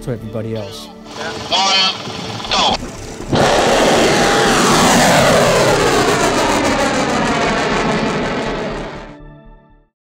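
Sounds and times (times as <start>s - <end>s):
rocket motor roaring: 1.1s - 9.2s.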